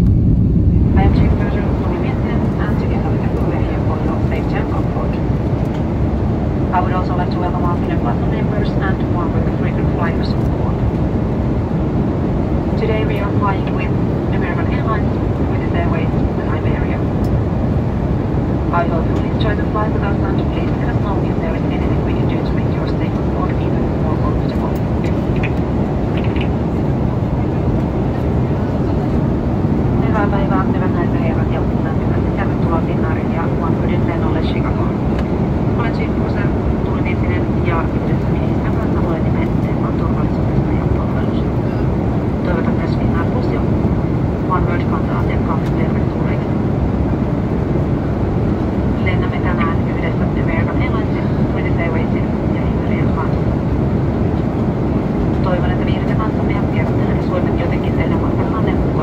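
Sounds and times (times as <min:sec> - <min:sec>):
airliner engine and airflow rush: 0:00.0 - 0:59.0.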